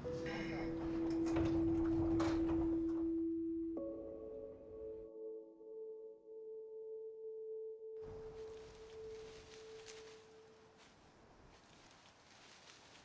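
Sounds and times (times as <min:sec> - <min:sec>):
wind through bamboo leaves: 0:08.0 - 0:13.0.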